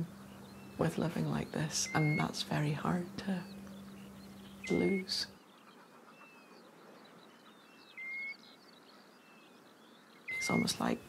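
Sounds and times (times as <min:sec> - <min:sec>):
birds chirping and twittering: 0:00.0 - 0:11.0
short rising bird whistle: 0:07.9 - 0:08.4.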